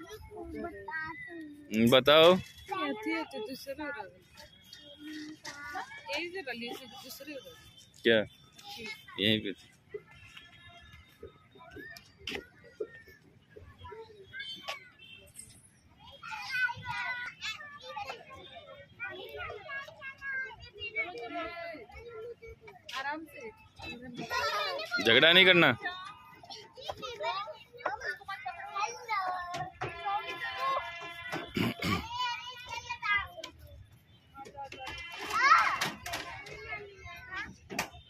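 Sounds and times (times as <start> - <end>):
children calling and chattering: 0.0 - 38.0.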